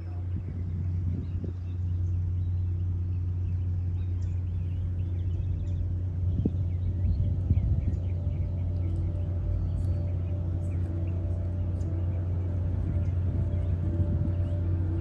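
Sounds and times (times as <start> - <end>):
low motor hum: 0.0 - 15.0.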